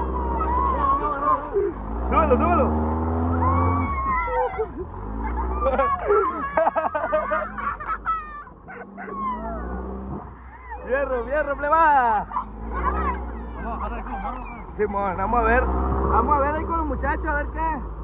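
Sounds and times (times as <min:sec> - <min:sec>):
boys yelling and laughing: 0:00.0 - 0:17.9
dune buggy engine rumble: 0:00.0 - 0:18.0.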